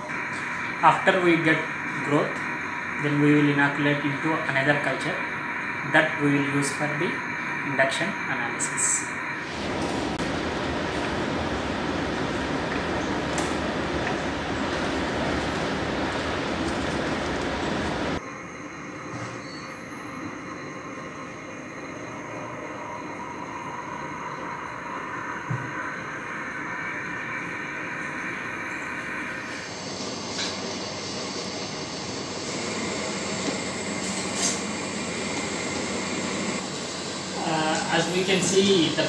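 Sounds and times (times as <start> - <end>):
blower rushing loudly: 0.0 - 18.3, 19.0 - 39.0
steady machine hum: 0.0 - 39.0.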